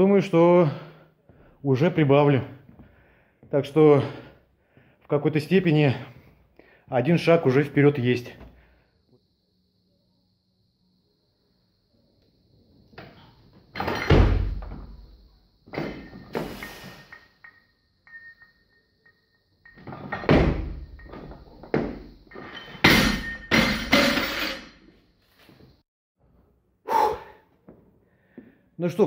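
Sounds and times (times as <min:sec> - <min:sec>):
barbell thudding on platform: 0:22.8 - 0:24.6.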